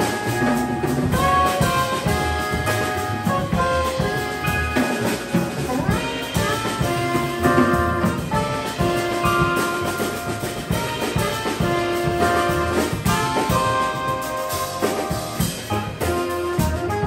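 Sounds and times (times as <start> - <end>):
drum kit: 0.0 - 17.0
keyboard: 0.0 - 17.0
upright bass: 0.0 - 17.0
soprano saxophone: 5.7 - 10.1.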